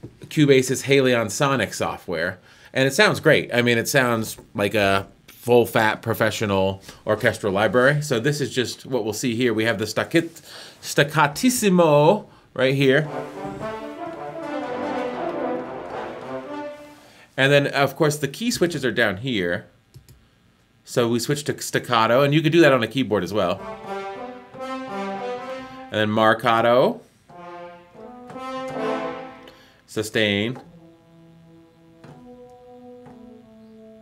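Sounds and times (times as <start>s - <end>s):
french horn staccato notes: 12.8s - 17.3s, 23.3s - 26.7s, 27.3s - 34.0s.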